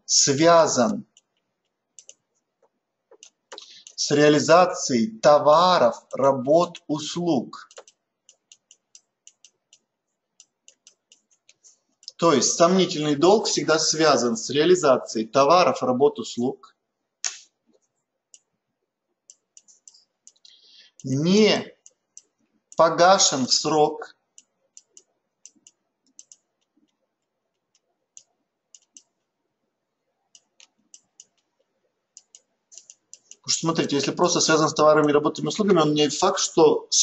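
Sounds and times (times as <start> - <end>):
stylus clicking on pen tablet: 0.8 - 4.0, 5.9 - 12.2, 17.2 - 18.5, 19.1 - 21.2, 21.8 - 22.9, 24.3 - 29.3, 30.2 - 33.8
stylus tapping on a pen tablet: 7.7 - 11.6.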